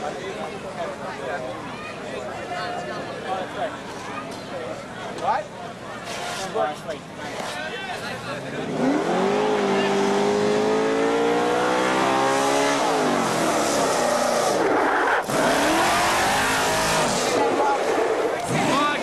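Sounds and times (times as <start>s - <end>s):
race car engine revving: 8.4s - 19.0s.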